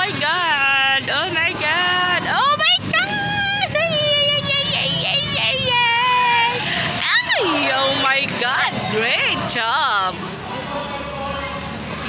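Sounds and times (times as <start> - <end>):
voices shouting and calling out: 0.0 - 12.0.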